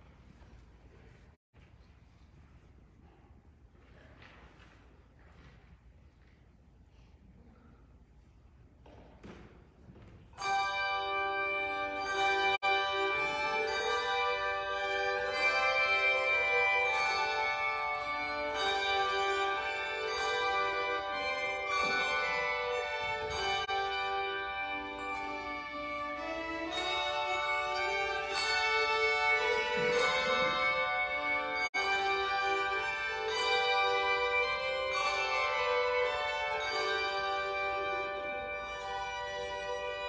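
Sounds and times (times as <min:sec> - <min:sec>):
handbells ringing a chord: 0:10.4 - 0:40.0
violins playing: 0:10.4 - 0:40.0.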